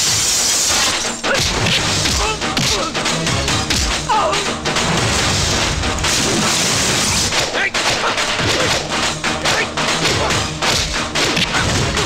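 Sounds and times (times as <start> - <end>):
action background score: 0.2 - 12.0.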